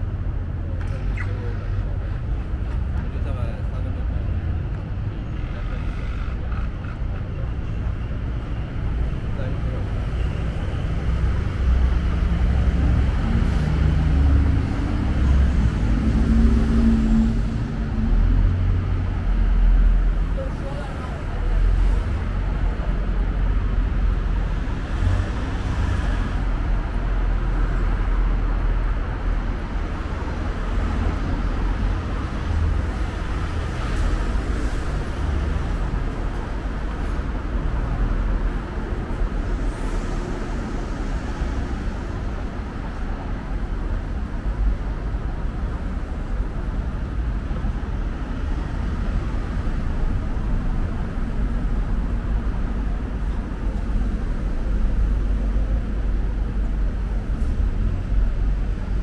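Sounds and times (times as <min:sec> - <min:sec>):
passing cars rumbling: 0:00.0 - 0:59.0
street background noise: 0:00.0 - 0:59.0.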